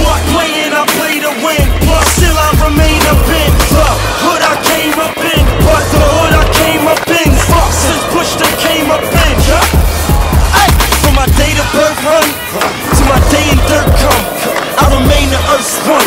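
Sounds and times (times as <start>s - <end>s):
hip hop beat with heavy bass: 0.0s - 16.0s
skateboard rolling: 0.0s - 16.0s
skateboard clacking on ground: 0.3s - 16.0s.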